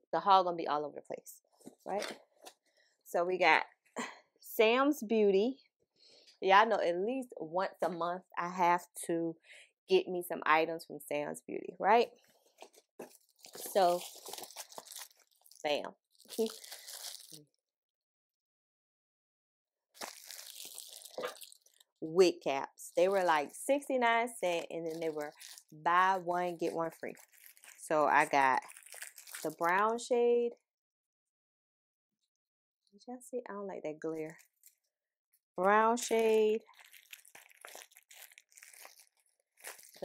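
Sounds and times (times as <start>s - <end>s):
cellophane packets crinkling: 12.2s - 17.4s, 20.0s - 22.0s, 23.0s - 23.6s, 24.4s - 29.9s, 34.2s - 34.9s, 35.6s - 40.0s.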